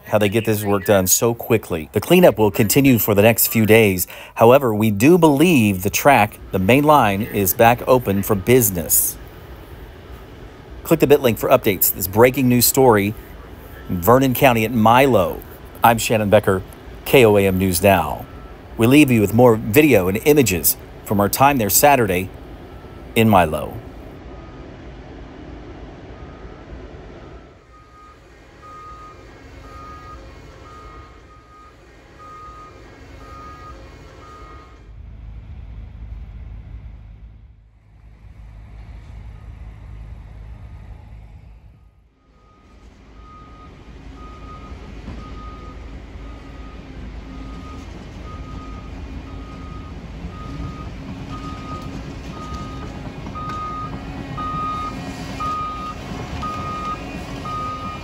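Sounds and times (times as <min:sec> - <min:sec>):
backup alarm beeping: 0:00.0 - 0:09.2, 0:10.9 - 0:23.8, 0:27.2 - 0:34.8, 0:42.2 - 0:58.0
machinery engines rumbling: 0:00.0 - 0:58.0.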